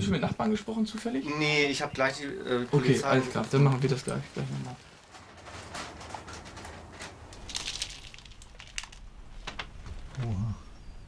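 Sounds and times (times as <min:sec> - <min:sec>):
rustling and crinkling: 0:02.5 - 0:10.4.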